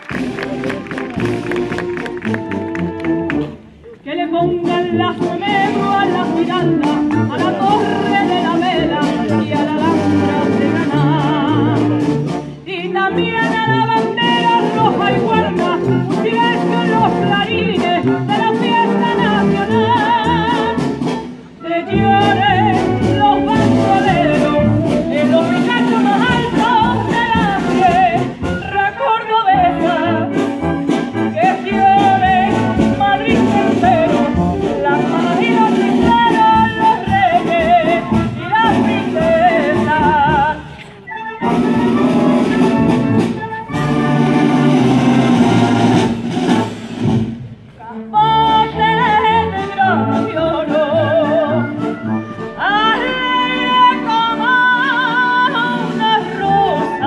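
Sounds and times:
wind band playing: 0.0s - 57.0s
woman singing into microphone: 4.0s - 12.0s, 12.7s - 21.0s, 21.6s - 30.4s, 31.4s - 40.7s, 47.8s - 51.8s, 52.6s - 57.0s.

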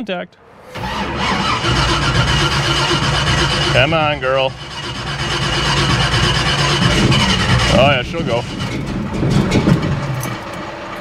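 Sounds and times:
car engine running: 0.8s - 11.0s.

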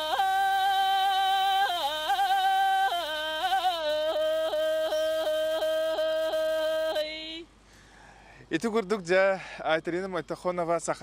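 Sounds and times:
woman singing unaccompanied: 0.0s - 7.5s.

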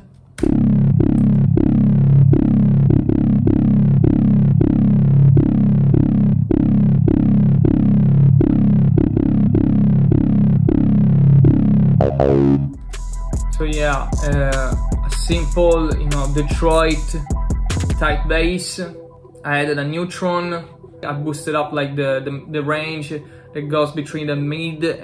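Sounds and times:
plucked bass notes: 0.4s - 18.6s.

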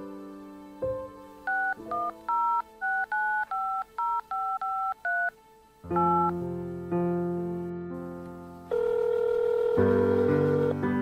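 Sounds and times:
phone keypad beeps: 1.5s - 5.3s, 6.0s - 6.4s.

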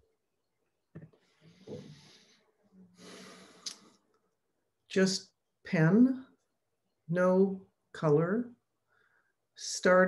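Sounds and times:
soft breath-like hiss: 1.2s - 4.0s.

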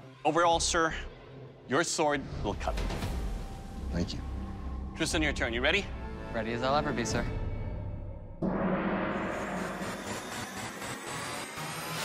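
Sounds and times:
gong ringing: 8.4s - 12.0s.

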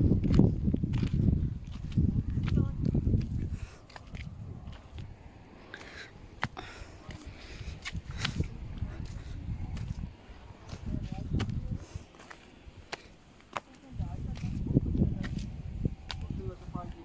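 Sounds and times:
footsteps crunching on stones: 0.0s - 5.2s, 5.8s - 16.4s.

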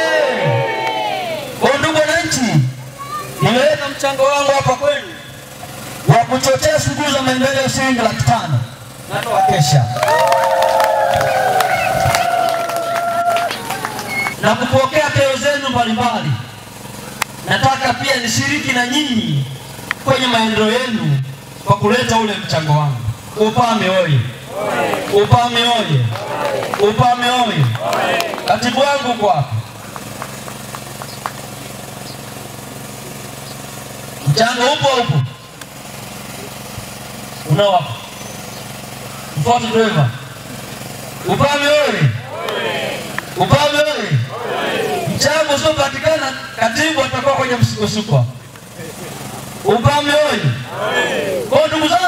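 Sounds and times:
women ululating: 0.0s - 1.6s, 9.3s - 14.3s, 24.5s - 25.2s, 26.2s - 26.8s, 44.3s - 45.2s, 50.7s - 51.5s
low mechanical hum: 0.0s - 52.0s
hand clapping: 10.0s - 14.4s, 24.8s - 25.4s, 26.1s - 27.0s, 27.6s - 28.8s, 29.9s - 31.8s.

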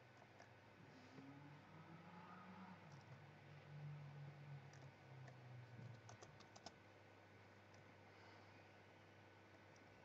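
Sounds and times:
mouse and keyboard clicks: 4.7s - 6.8s.

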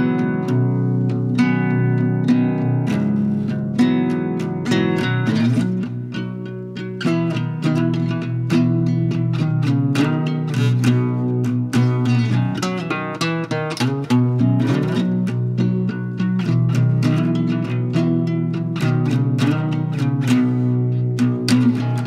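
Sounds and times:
nylon-string acoustic guitar: 0.0s - 22.0s.

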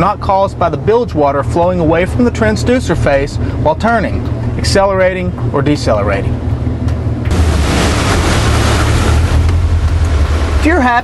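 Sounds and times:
motorboat engine drone: 0.0s - 11.0s
wind buffeting microphone: 1.9s - 11.0s
rushing water: 7.3s - 11.0s.

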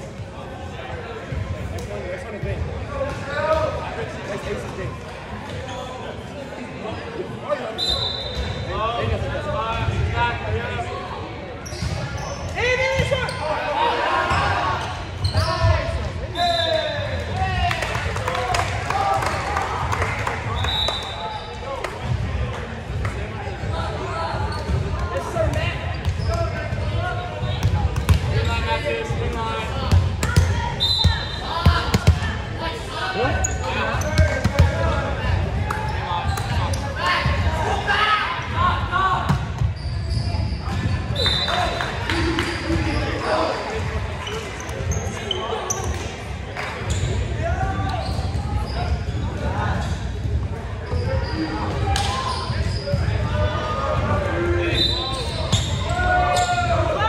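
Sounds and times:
referee whistle blasts: 7.8s - 8.5s, 20.6s - 21.2s, 30.8s - 31.5s, 41.2s - 41.6s, 54.7s - 55.7s.

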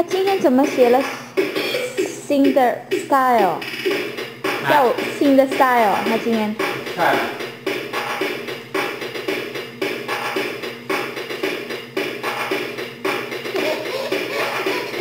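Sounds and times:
toy keyboard electronic tune: 13.5s - 15.0s.

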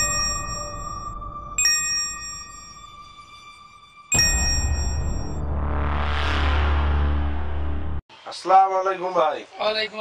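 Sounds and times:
bell ding: 0.0s - 3.0s, 4.1s - 5.4s.

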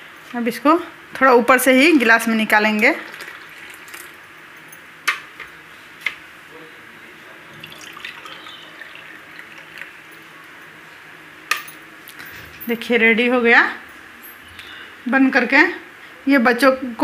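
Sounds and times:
milkshake pouring into glasses: 3.0s - 4.3s, 7.3s - 10.8s.

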